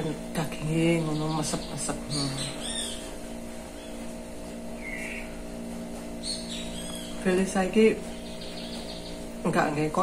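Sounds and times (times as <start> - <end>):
machine-like hum: 0.0 - 10.0
bird chirps: 0.9 - 4.1, 4.8 - 5.4, 6.2 - 9.3.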